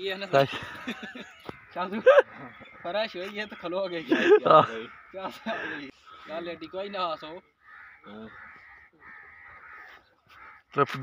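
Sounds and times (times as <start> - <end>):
crow cawing: 0.5 - 10.9.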